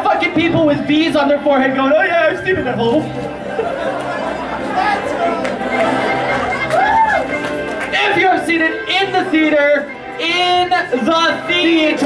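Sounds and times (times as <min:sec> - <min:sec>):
music playing: 0:00.0 - 0:12.0
audience chatter: 0:01.9 - 0:10.2.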